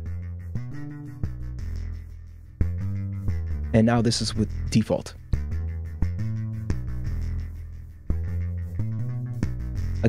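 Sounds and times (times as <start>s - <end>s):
buzzy synth bass line: 0.0s - 10.0s.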